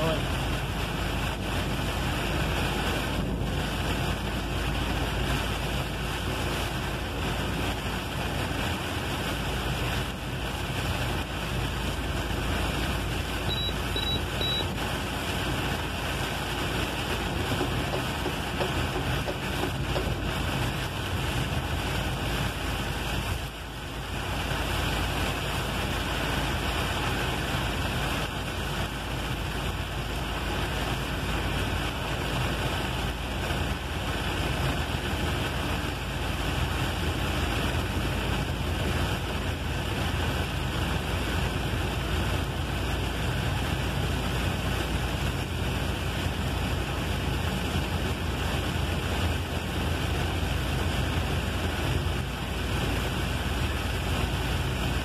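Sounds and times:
rain on windshield: 0.0 - 55.0
truck engine running: 0.0 - 55.0
tyres hissing on wet road: 0.0 - 55.0.

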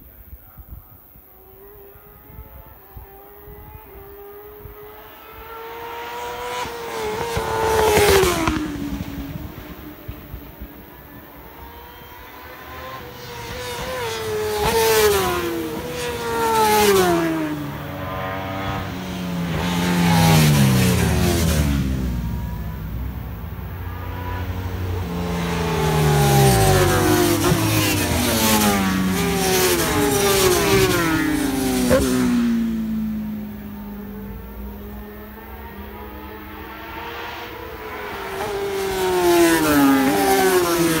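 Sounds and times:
racing motorbikes passing: 1.4 - 41.0.

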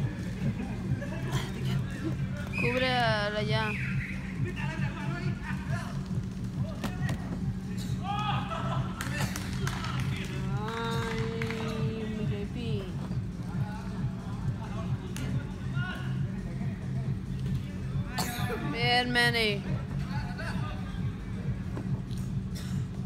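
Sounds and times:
steady low hum: 0.0 - 23.0
players shouting: 7.8 - 9.2.

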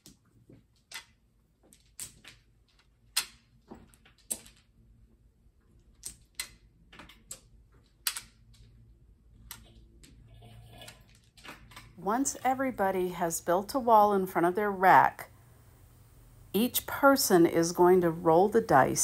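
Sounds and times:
tiles clicking together: 6.0 - 8.7.

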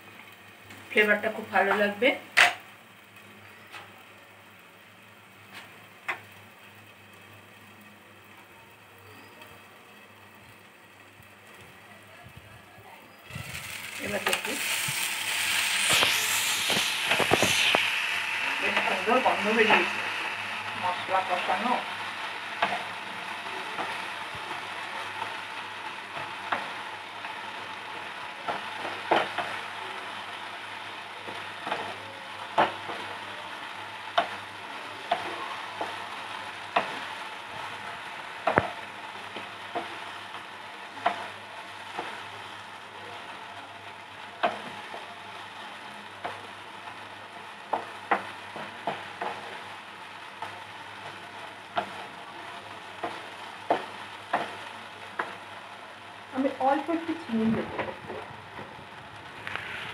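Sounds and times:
food sizzling in a pan: 0.0 - 59.9.

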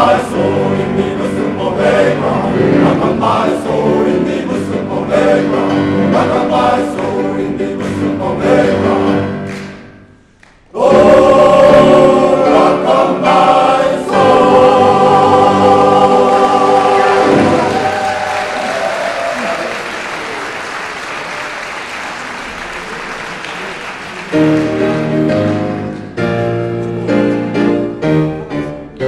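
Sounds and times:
men's choir singing: 0.0 - 9.8, 10.7 - 19.6
piano playing: 0.0 - 18.6, 23.9 - 29.0
audience applause: 16.2 - 25.6.

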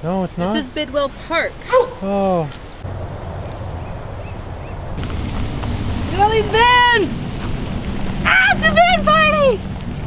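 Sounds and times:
wind buffeting microphone: 2.6 - 10.0.

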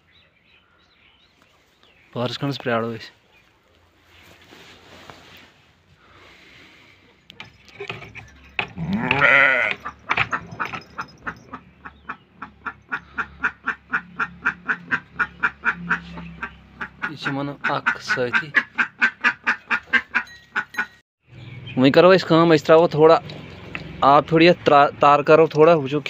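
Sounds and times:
sheep bleating: 8.8 - 9.9.

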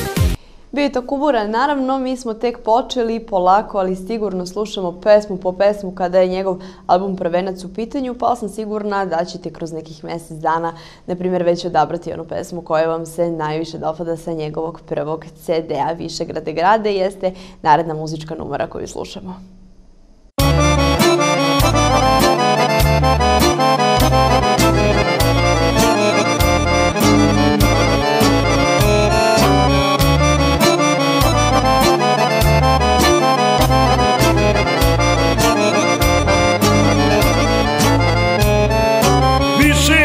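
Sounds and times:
accordion folk music: 0.0 - 0.4, 20.4 - 40.0
man singing: 39.5 - 40.0.

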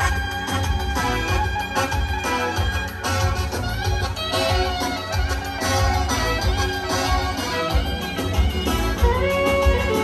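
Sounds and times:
clarinet melody: 0.0 - 10.0
keyboard accompaniment: 0.0 - 10.0
pulsing bass beat: 0.0 - 10.0.

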